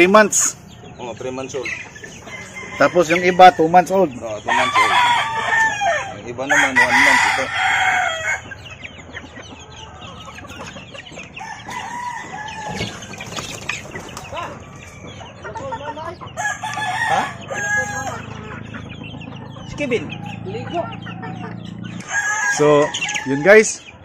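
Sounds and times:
chicks cheeping and clucking: 0.0 - 24.0
roosters crowing: 0.0 - 24.0.

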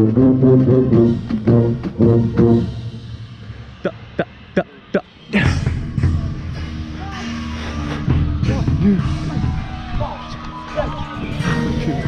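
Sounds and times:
low bugle notes: 0.0 - 3.1
brass line playing: 0.0 - 3.2.

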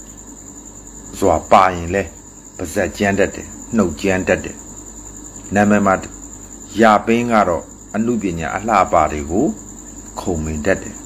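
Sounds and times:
cricket trilling: 0.0 - 11.0
man speaking in short phrases: 5.5 - 6.1.

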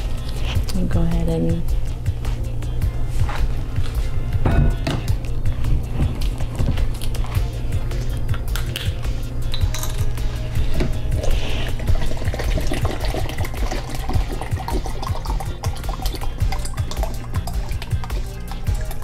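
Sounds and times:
background music: 0.0 - 19.0
water pouring into plastic cup: 11.7 - 19.0.

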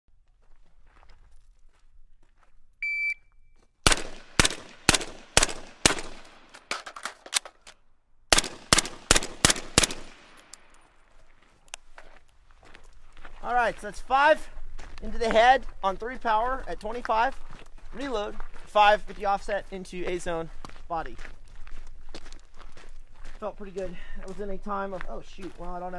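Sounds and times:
shot timer beep: 2.8 - 3.5
suppressed rifle shots: 3.8 - 7.6, 8.3 - 10.8.

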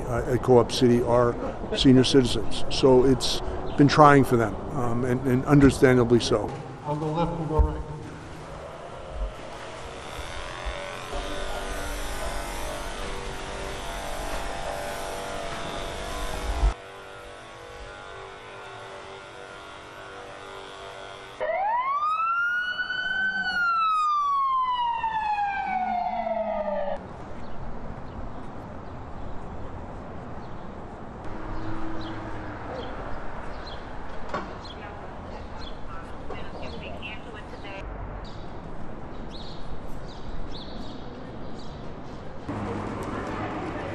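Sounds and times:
street traffic noise: 0.0 - 43.9
ambulance siren wailing: 21.4 - 27.0.

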